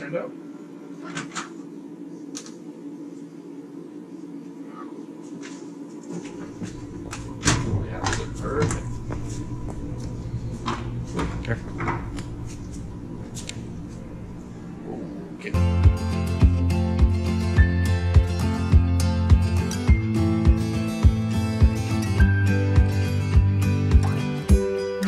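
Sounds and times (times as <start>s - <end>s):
low rumble: 6.5s - 16.0s.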